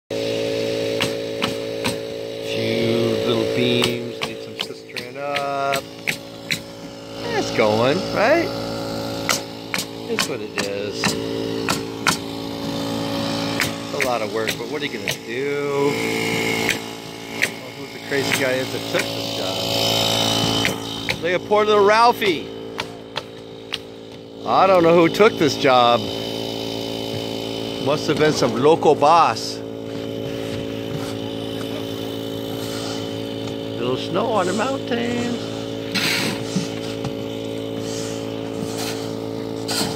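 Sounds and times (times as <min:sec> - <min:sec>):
low machine hum: 0:00.1 - 0:39.9.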